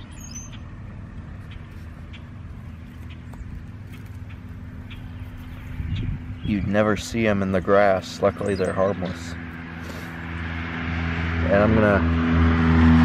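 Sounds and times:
high chirp: 0.0 - 0.8
low engine hum: 0.0 - 13.0.

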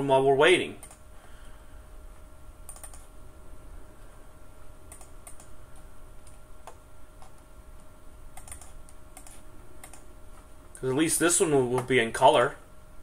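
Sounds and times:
faint steady hum: 0.0 - 13.0
computer keyboard clicks: 0.8 - 1.0, 2.7 - 3.1, 4.9 - 5.5, 8.4 - 10.0
mouse clicks: 2.7 - 3.1, 4.9 - 5.5, 6.3 - 10.1.

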